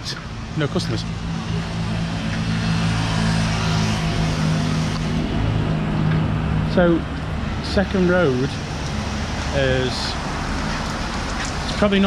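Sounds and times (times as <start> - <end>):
traffic hiss: 0.0 - 1.7, 6.7 - 12.0
vehicle engine humming: 0.0 - 12.0.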